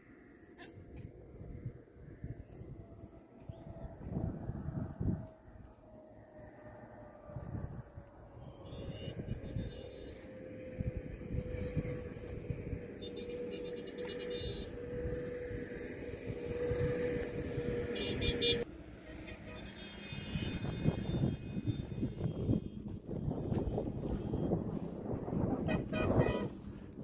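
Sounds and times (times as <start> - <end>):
vehicle engine drone: 0.0 - 27.0
wind and road noise: 0.0 - 27.0.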